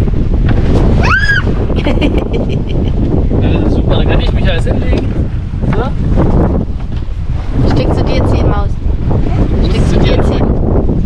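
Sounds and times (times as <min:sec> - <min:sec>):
water washing past hull: 0:00.0 - 0:11.0
wind buffeting microphone: 0:00.0 - 0:11.0.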